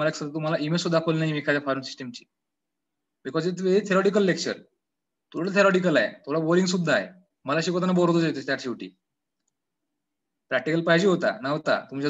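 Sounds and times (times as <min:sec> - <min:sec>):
man speaking: 0:00.0 - 0:02.3, 0:03.2 - 0:04.6, 0:05.3 - 0:08.9, 0:10.5 - 0:12.0.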